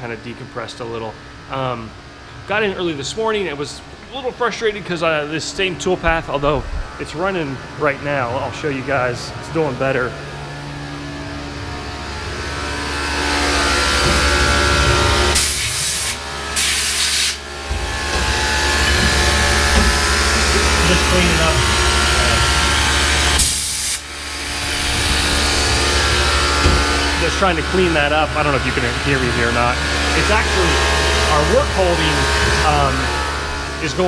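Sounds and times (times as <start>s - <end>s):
mill cutting with whine and hum: 1.1s - 34.0s
short bursts of hiss: 15.4s - 17.4s.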